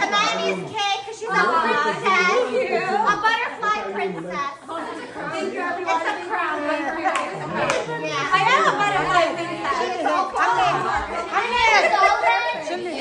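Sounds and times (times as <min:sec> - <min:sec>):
women talking excitedly: 0:00.0 - 0:13.0.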